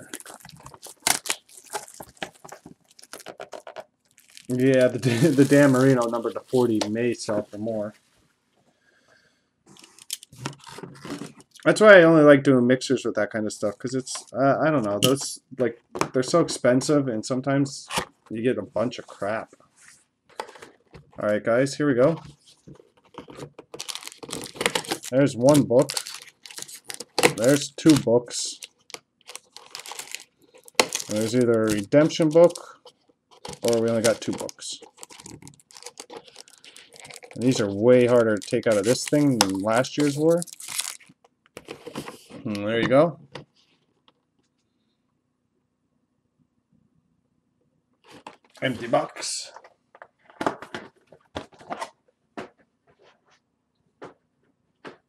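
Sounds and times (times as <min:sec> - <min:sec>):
plastic wrap crinkling and tearing: 0:00.0 - 0:06.8, 0:23.1 - 0:32.7, 0:33.3 - 0:42.0.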